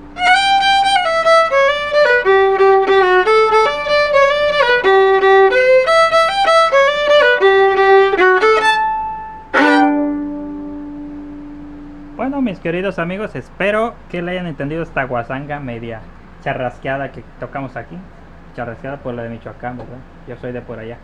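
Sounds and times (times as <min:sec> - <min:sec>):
solo violin melody: 0:00.0 - 0:12.2.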